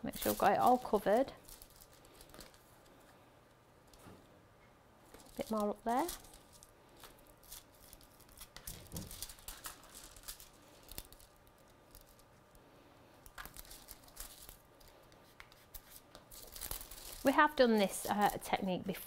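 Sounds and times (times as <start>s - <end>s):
foil crinkling: 0.0s - 2.9s, 5.1s - 12.4s, 13.2s - 15.0s, 15.7s - 18.7s.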